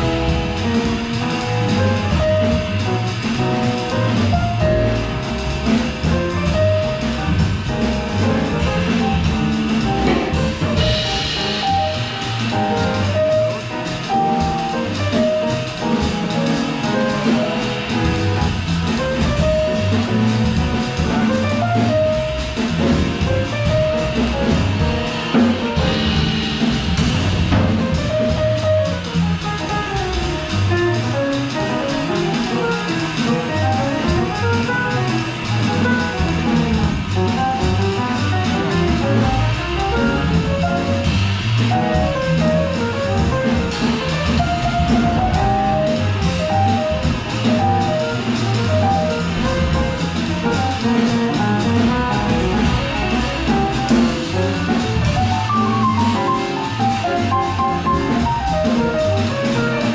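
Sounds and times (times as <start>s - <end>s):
drum kit with ride cymbals: 0.0s - 59.9s
jazz melodic lines: 0.0s - 59.9s
walking upright bass: 0.0s - 59.9s.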